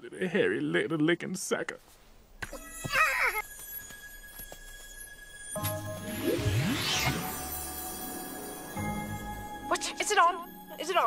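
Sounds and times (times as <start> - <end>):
squeaky cartoon vocal cry: 2.5 - 3.4
high ringing chime tone: 2.8 - 11.0.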